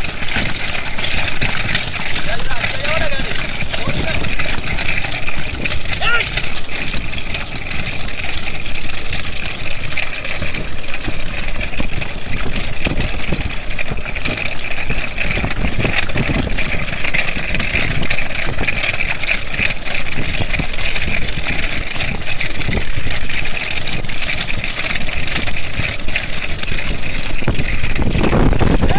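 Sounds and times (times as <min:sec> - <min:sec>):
vehicle engine running: 0:00.0 - 0:28.9
wind on microphone: 0:26.8 - 0:28.9.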